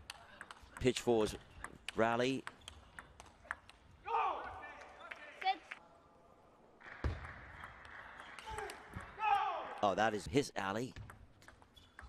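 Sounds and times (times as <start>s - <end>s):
table tennis ball taps: 0.0s - 3.8s
player shouting: 4.0s - 4.6s, 8.5s - 9.8s.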